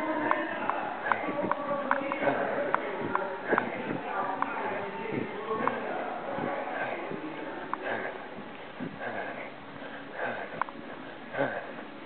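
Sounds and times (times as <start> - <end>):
hard gasping breaths: 6.4 - 12.0.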